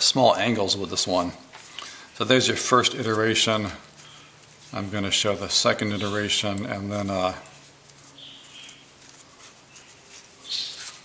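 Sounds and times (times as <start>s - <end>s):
paper rustling and crinkling: 2.4s - 11.0s.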